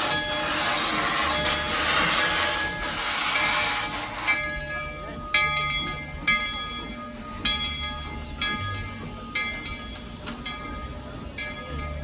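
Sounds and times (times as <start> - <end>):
steam locomotive venting steam: 0.0 - 12.0.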